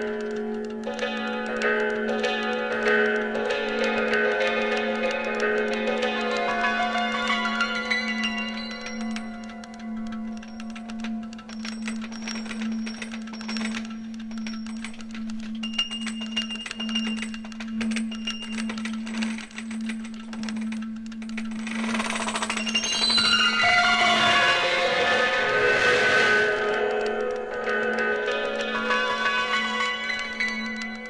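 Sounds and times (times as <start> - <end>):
low drone: 21.8 - 30.3
high held tones: 22.6 - 31.0.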